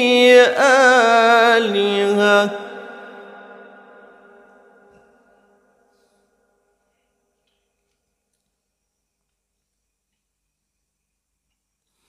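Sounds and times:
solo voice reciting melodically: 0.0s - 4.3s.

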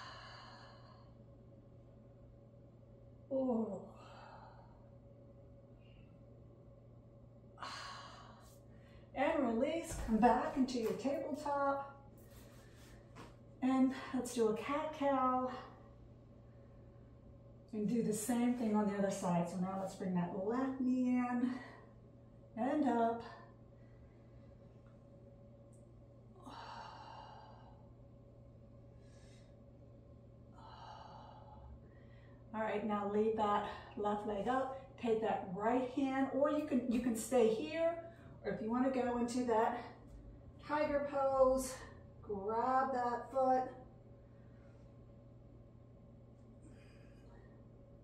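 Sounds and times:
faint low hum: 0.0s - 48.0s.

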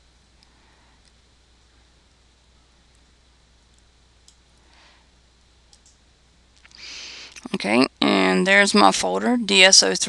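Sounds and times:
low room hiss: 0.0s - 10.0s
computer mouse clicks: 2.9s - 4.4s, 5.7s - 6.0s.

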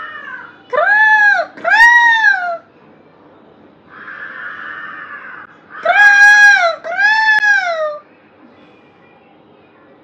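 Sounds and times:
woman imitating crow caws: 3.9s - 8.0s.

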